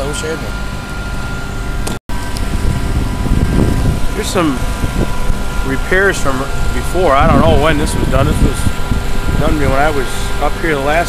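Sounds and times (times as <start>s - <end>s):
engine hum: 0.0s - 11.0s
wind rumble on microphone: 1.8s - 11.0s.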